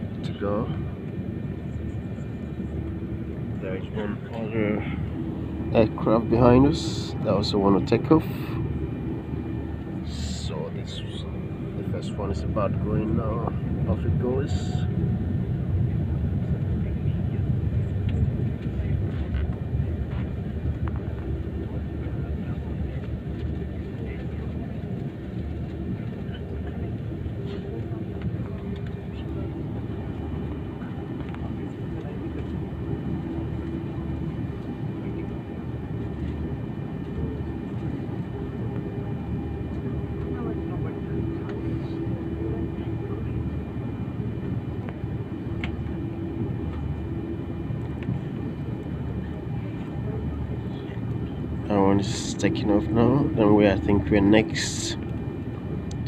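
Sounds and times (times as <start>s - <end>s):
jet airliner cabin rumble: 0.0s - 56.0s
steady hum: 0.0s - 56.0s.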